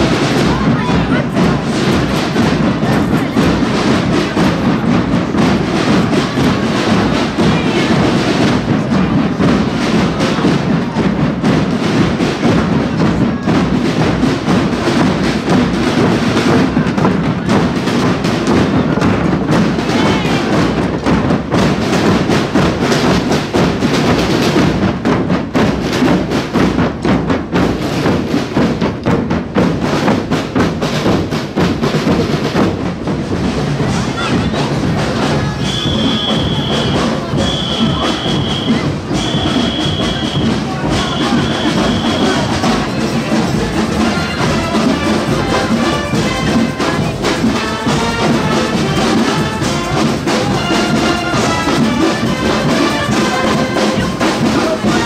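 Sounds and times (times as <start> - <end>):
bass drums beating: 0.0 - 55.0.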